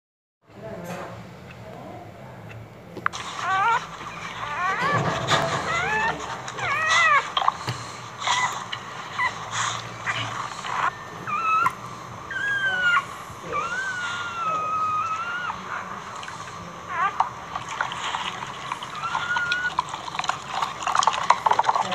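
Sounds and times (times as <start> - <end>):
dog whining and whimpering: 3.1 - 21.9.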